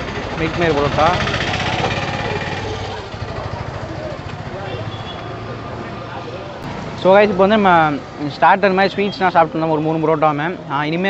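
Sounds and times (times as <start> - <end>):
faint voices talking: 0.8 - 11.0.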